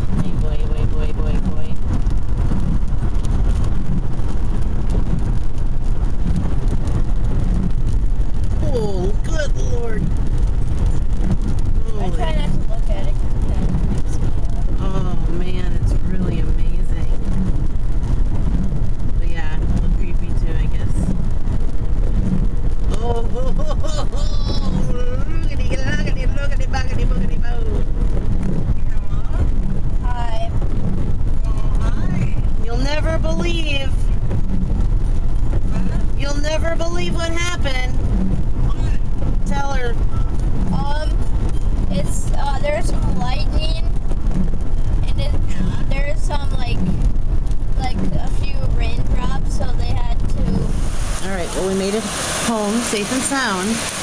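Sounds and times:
car road and engine rumble: 0:00.0 - 0:54.0.

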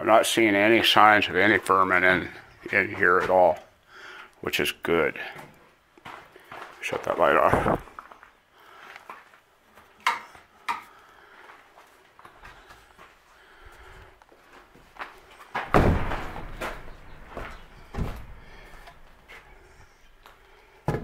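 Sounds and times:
door thumping shut with rattle: 0:15.6 - 0:18.4.

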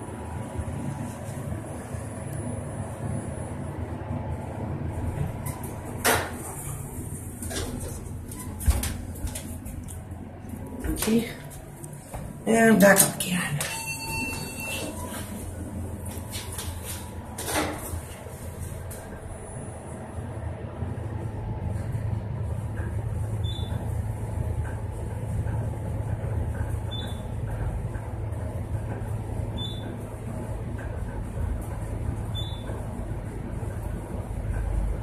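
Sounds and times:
elevator low hum: 0:00.0 - 0:35.0
elevator clatter: 0:04.9 - 0:20.0, 0:21.3 - 0:35.0
short high beep: 0:13.7 - 0:15.2.

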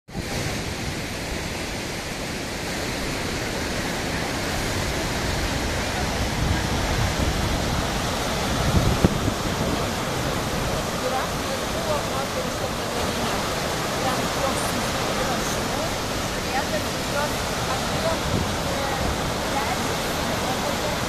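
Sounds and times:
floodwater rushing: 0:00.1 - 0:21.0.

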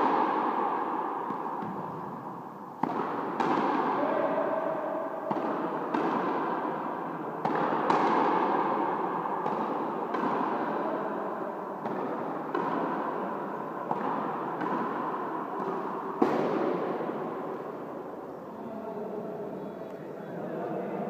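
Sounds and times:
ball hitting racket strings: 0:00.0 - 0:02.2, 0:02.8 - 0:04.0, 0:05.3 - 0:06.8, 0:07.4 - 0:10.8, 0:11.8 - 0:17.8
ball hitting wall echoing: 0:00.0 - 0:18.2.

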